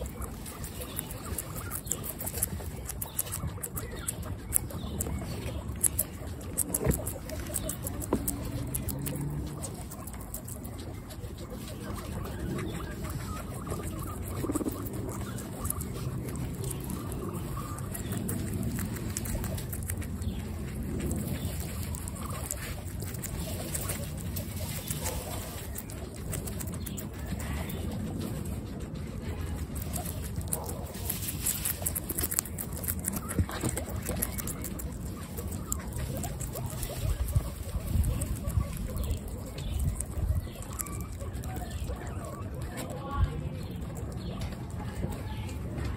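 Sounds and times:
guinea pigs chewing: 0.0 - 45.9.

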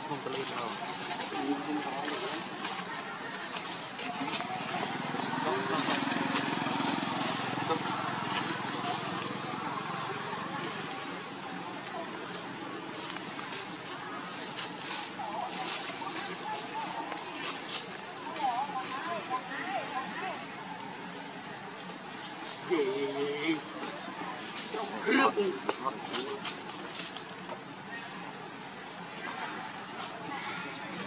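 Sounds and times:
steady background hiss: 0.0 - 31.0.

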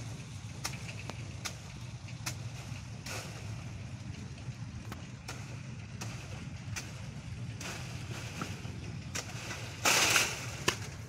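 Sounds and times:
steady low hum: 0.0 - 11.0
blade chopping fruit stalks: 0.5 - 3.7, 4.8 - 11.0.

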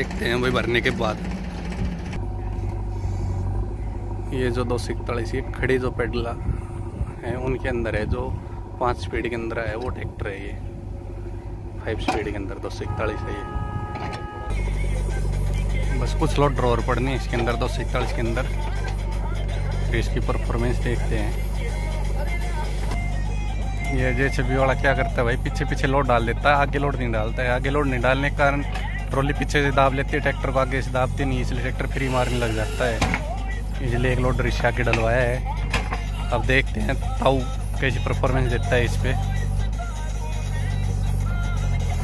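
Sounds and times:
tractor diesel engine running: 0.0 - 42.0
background music: 11.2 - 42.0.

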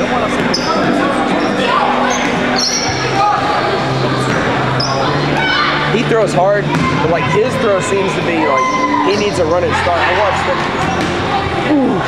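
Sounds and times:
players calling out: 0.2 - 12.0.

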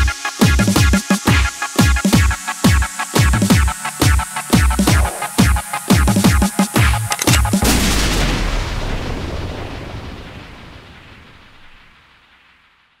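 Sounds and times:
breakbeat drums: 0.4 - 7.7
final hit with deep bass: 7.6 - 9.6.

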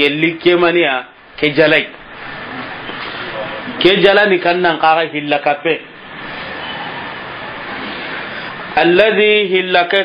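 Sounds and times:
steady rushing noise: 1.2 - 9.6.

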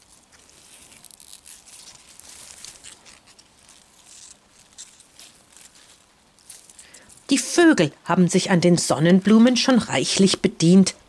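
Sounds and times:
leaves and soil rustling: 0.0 - 7.9.

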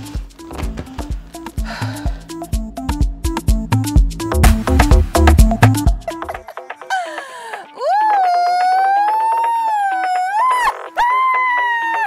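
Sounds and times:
music with steady beat: 0.0 - 11.7
woman screaming with delight: 7.8 - 12.0.

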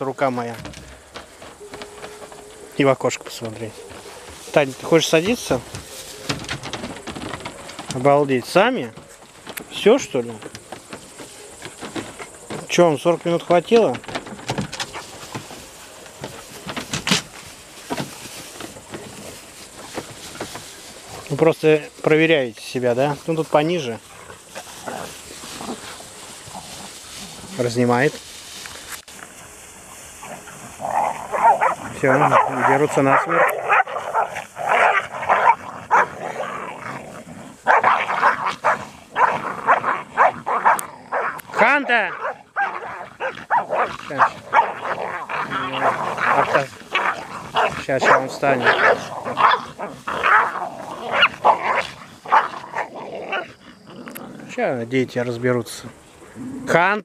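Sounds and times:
dogs scuffling in grass: 0.0 - 56.9
dogs growling: 23.7 - 27.6, 30.2 - 54.9, 55.9 - 56.9.

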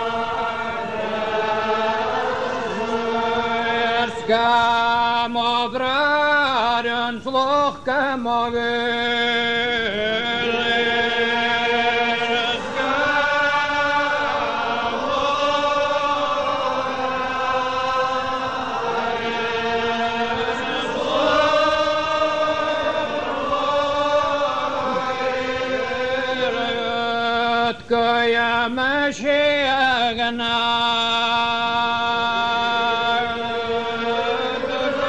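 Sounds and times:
congregation singing a psalm: 0.0 - 35.0.

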